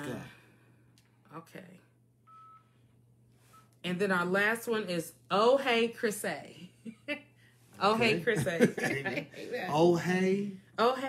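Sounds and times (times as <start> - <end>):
phone beeps: 2.2 - 2.8, 3.4 - 3.7.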